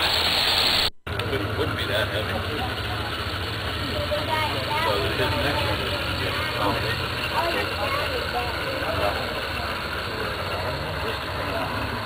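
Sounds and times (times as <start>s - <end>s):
indistinct talk of people: 1.1s - 12.0s.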